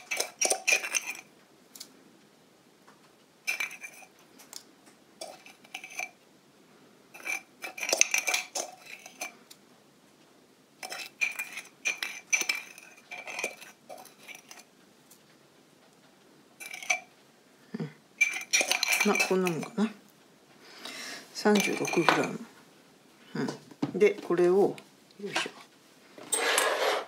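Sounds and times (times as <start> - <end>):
spoon scraping ceramic pot: 0.0 - 1.3, 3.5 - 4.2, 5.2 - 6.2, 7.1 - 9.4, 10.8 - 14.7, 16.6 - 17.1, 18.2 - 20.0, 21.4 - 22.4, 26.2 - 27.0.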